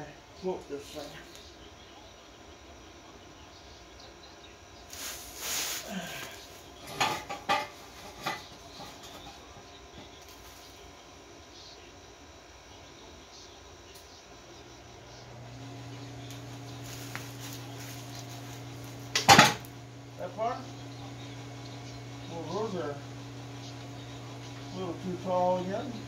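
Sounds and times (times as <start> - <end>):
low machine hum: 0.0 - 26.0
workshop noise: 4.9 - 10.9, 15.0 - 26.0.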